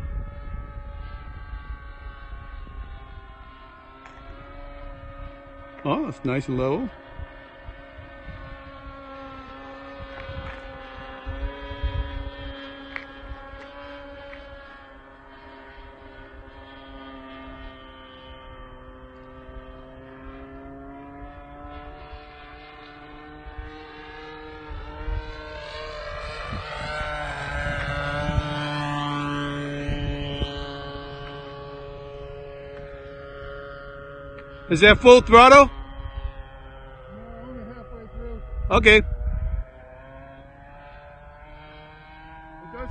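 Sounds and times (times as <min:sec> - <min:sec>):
model plane engine droning: 0:00.0 - 0:42.9
wind rumbling on microphone: 0:00.0 - 0:42.9.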